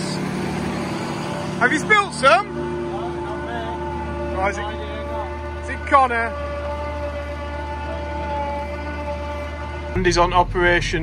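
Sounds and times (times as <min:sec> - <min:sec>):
steady mechanical whine: 0:00.0 - 0:11.0.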